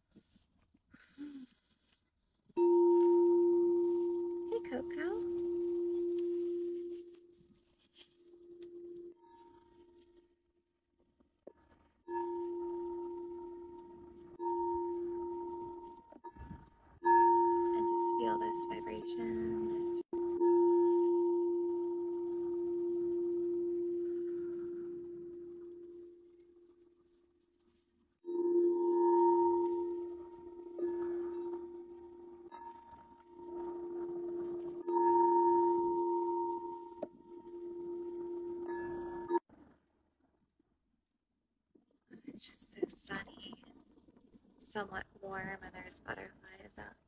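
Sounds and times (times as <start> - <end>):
crystal singing bowl ringing: 2.6 - 10.1, 12.1 - 26.9, 28.3 - 39.4.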